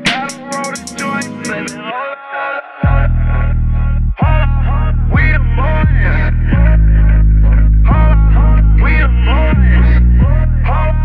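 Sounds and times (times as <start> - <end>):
hi-hats: 0.0 - 1.9
trap beat melody: 0.0 - 2.1, 2.8 - 11.0
heavy bass drop: 2.8 - 11.0.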